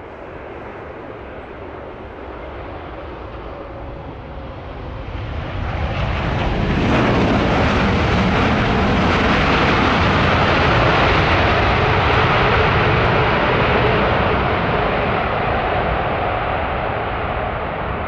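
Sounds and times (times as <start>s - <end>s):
jet engines roaring: 0.0s - 18.0s.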